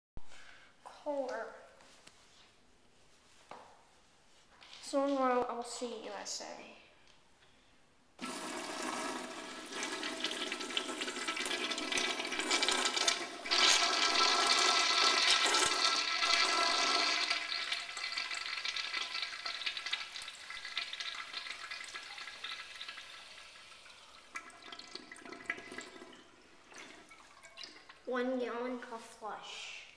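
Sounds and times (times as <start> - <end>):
urinal flushing: 8.2 - 28.1.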